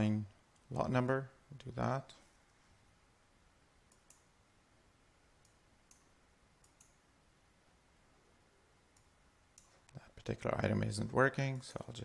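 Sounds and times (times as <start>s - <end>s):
computer mouse clicks: 3.9s - 4.3s, 5.4s - 7.0s, 8.9s - 10.0s.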